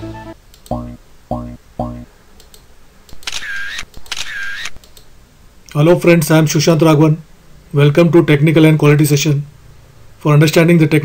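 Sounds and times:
camera shutter sound effect: 3.1 - 4.8.

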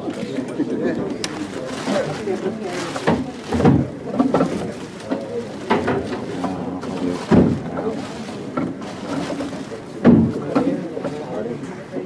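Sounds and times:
low indistinct voices: 0.0 - 12.0
plastic bag rustling: 0.1 - 11.6.

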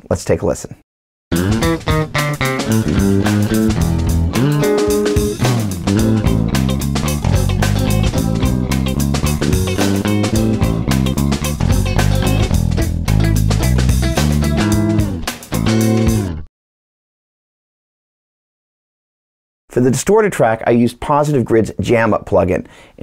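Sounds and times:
drum loop: 1.3 - 16.3
clean electric guitars: 1.3 - 16.4
bass guitar: 1.3 - 16.5.

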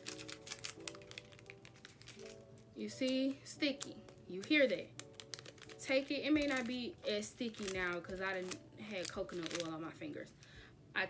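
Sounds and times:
adhesive strip crackling: 0.0 - 9.8
soft background music: 0.0 - 11.0.

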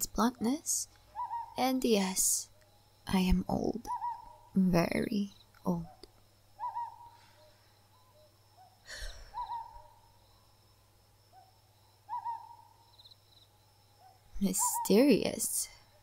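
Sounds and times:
owl hooting: 1.1 - 1.6, 3.8 - 4.5, 6.6 - 10.1, 11.3 - 12.9, 14.4 - 15.4.

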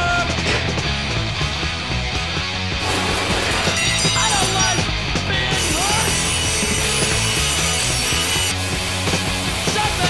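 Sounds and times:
punk rock music: 0.0 - 10.0
bench grinder grinding steel: 5.5 - 9.2.

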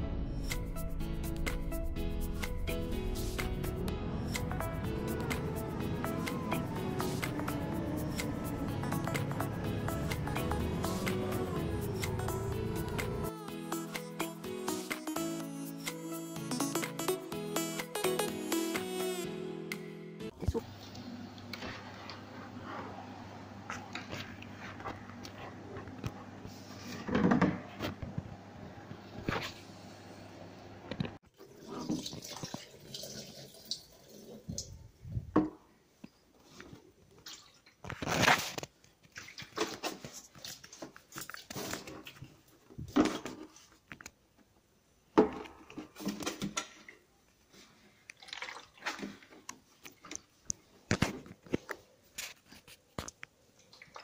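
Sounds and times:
water splashing being poured: 31.5 - 34.7, 37.2 - 37.8, 48.1 - 49.3.

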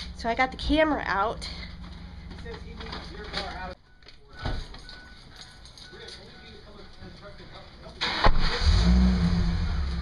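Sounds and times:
truck engine humming: 0.0 - 3.8.

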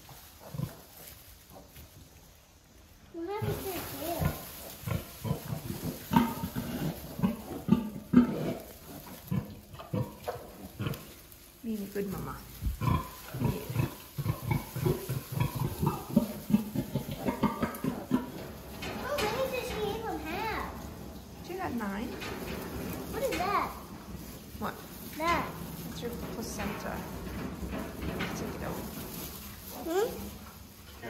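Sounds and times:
pigs grunting and squealing: 0.4 - 1.0, 3.4 - 11.2, 12.8 - 19.4.

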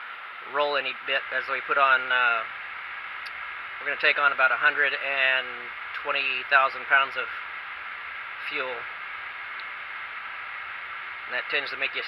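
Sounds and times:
background hiss: 0.0 - 12.0
man speaking: 0.5 - 2.5, 3.8 - 7.3, 8.5 - 8.8, 11.3 - 12.0.

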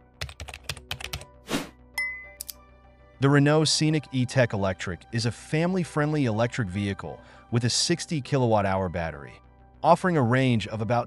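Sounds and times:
faint background music: 0.0 - 11.0
short swish: 1.5 - 1.7.

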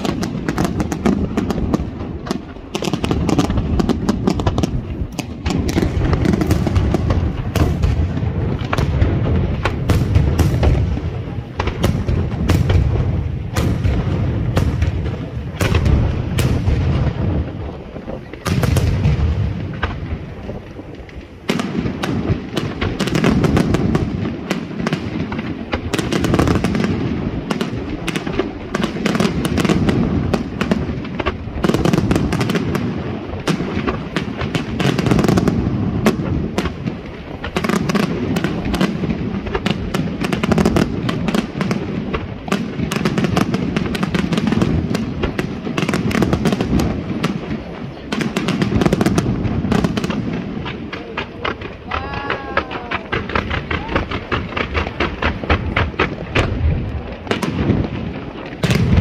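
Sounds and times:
firework shells bursting: 0.0 - 59.0.

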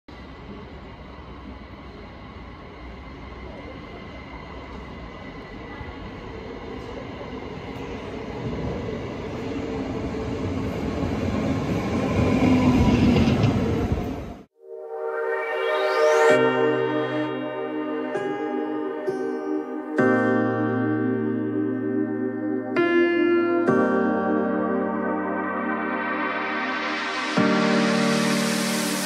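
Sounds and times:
electric train rumble: 0.1 - 14.5.

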